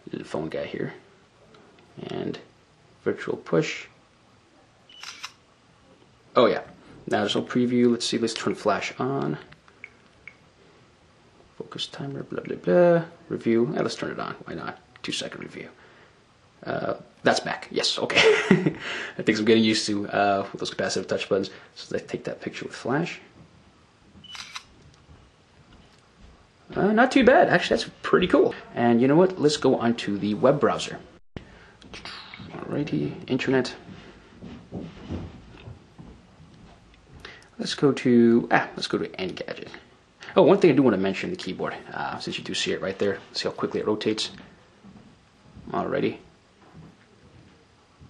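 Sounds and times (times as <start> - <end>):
phone camera shutter sound: 4.9 - 5.4, 24.2 - 24.7.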